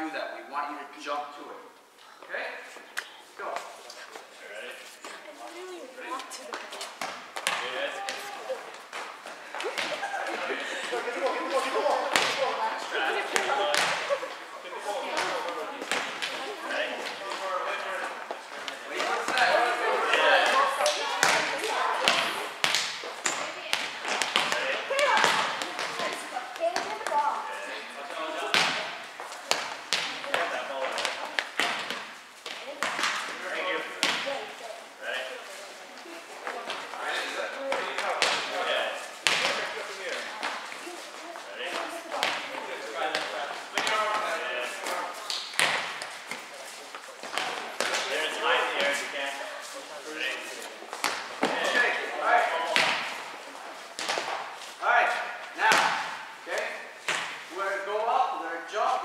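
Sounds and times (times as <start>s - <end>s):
players' voices: 0.0s - 59.0s
volleyball smacking the floor: 6.2s - 14.2s, 15.0s - 17.5s, 18.5s - 27.2s, 28.4s - 34.5s, 39.2s - 40.7s, 41.7s - 46.5s, 51.0s - 53.3s, 55.5s - 57.5s.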